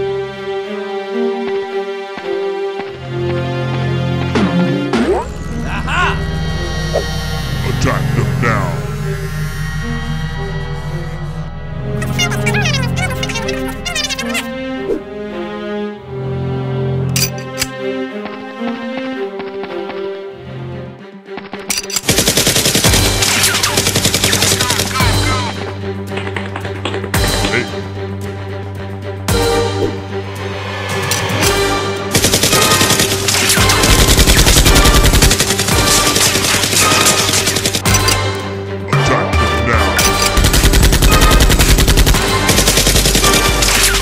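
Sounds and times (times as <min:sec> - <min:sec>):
background music: 0:00.0 - 0:44.0
rapid automatic gunfire: 0:22.0 - 0:25.1, 0:32.1 - 0:37.9, 0:40.3 - 0:44.0.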